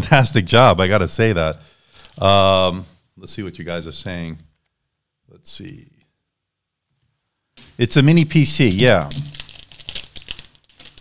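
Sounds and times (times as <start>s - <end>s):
packaging rustling: 8.6s - 11.0s.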